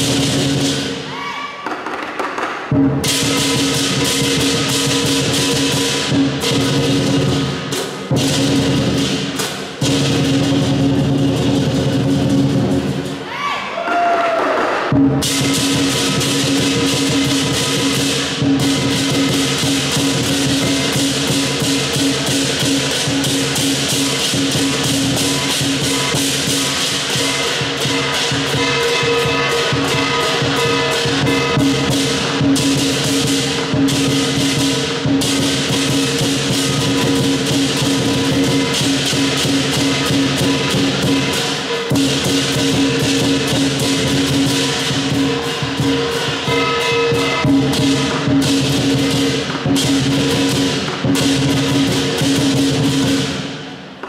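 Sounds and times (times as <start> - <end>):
large drum beating fast: 0.0 - 1.0, 1.8 - 13.2, 13.9 - 54.0
clashing cymbals: 0.0 - 1.1, 2.2 - 13.3, 14.6 - 54.0
gong ringing: 24.6 - 35.0, 35.8 - 52.0.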